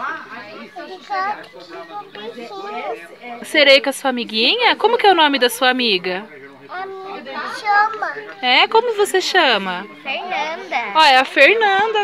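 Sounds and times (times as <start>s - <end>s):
small child babbling: 6.7s - 8.3s.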